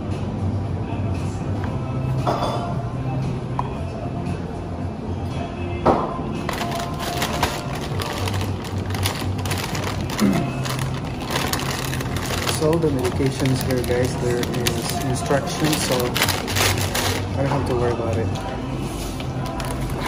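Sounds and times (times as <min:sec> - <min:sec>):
paper bag rustling and crinkling: 0:06.4 - 0:20.0.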